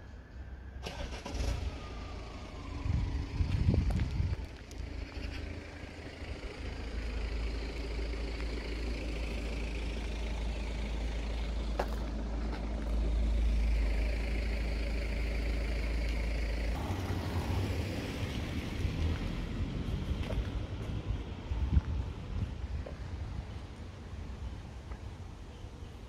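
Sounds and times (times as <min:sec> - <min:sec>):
road traffic rumble: 0:00.0 - 0:26.0.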